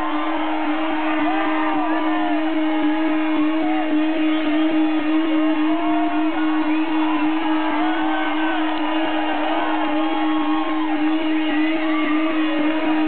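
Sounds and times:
amplified guitar drone: 0:00.0 - 0:13.0
crowd cheering and shouting: 0:00.0 - 0:13.0.

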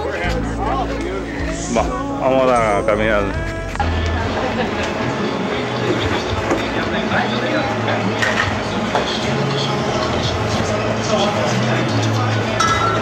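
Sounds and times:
indistinct voices: 0:00.0 - 0:13.0.

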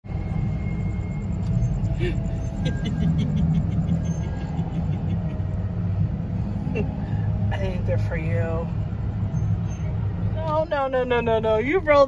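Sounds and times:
car engine idling: 0:00.0 - 0:12.0
person laughing: 0:02.0 - 0:05.6.

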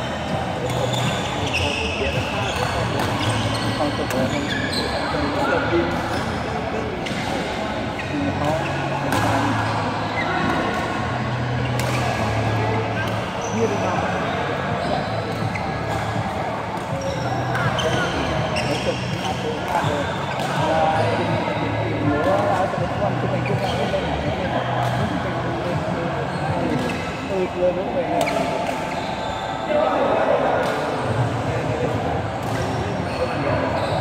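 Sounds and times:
shoes squeaking on court: 0:00.0 - 0:27.6, 0:28.2 - 0:29.7, 0:30.6 - 0:34.0
chatter of many voices: 0:00.0 - 0:34.0
racket hitting shuttlecock: 0:09.0 - 0:09.5, 0:11.8 - 0:12.3.

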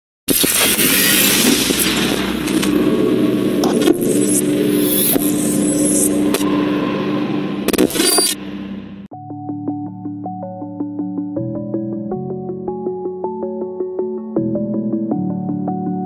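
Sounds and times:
noisy rushing swell: 0:00.8 - 0:09.1
steady low hum: 0:01.3 - 0:09.1.

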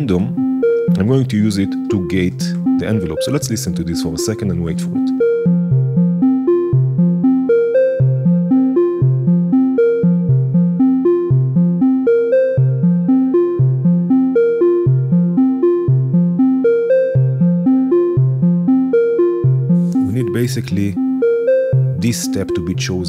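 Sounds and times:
sequenced synth notes: 0:00.0 - 0:23.0.

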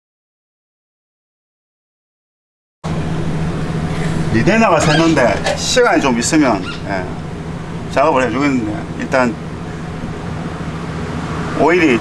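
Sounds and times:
car engine hum with hiss: 0:02.9 - 0:12.0.

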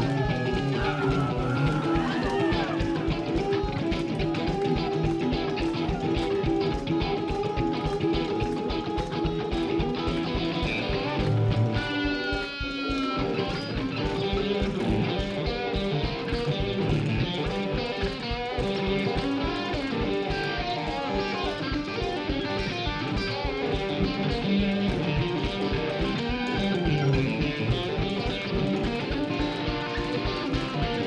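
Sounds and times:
electric guitar lead lines: 0:00.0 - 0:31.0
live rock band playing: 0:00.0 - 0:31.0.

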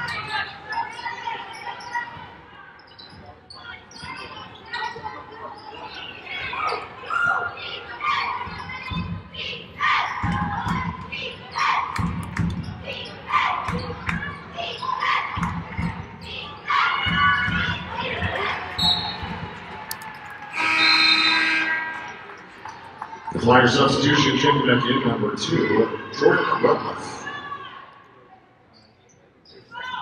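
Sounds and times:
players shouting: 0:12.8 - 0:22.4.

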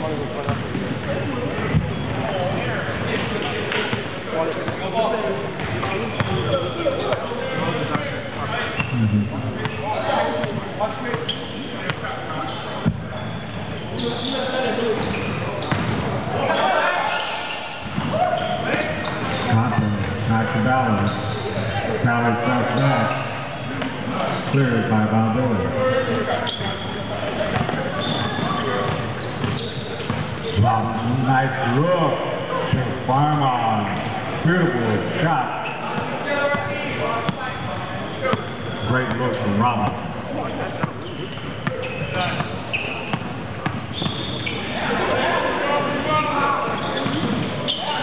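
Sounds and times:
echoing chatter: 0:00.0 - 0:48.0
voices of players and spectators: 0:00.0 - 0:48.0
basketball bouncing: 0:15.6 - 0:16.0.

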